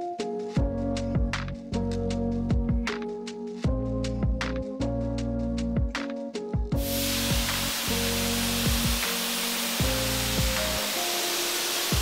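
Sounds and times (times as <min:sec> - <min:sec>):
background music with steady beat: 0:00.0 - 0:12.0
paint spray gun hissing: 0:06.8 - 0:12.0.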